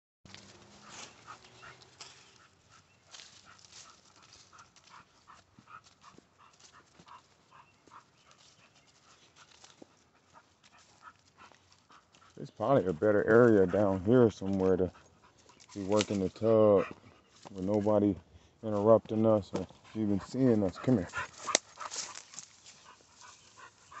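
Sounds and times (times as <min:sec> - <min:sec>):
light scuffs and clicks: 0:00.3 - 0:12.4, 0:15.3 - 0:17.9, 0:19.1 - 0:24.0
dog panting: 0:00.4 - 0:24.0.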